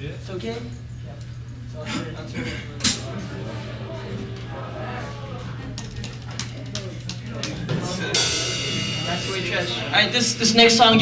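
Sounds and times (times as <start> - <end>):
guitar amplifier hum: 0.0 - 11.0
low voices: 1.2 - 11.0
drum kit hits: 7.7 - 11.0.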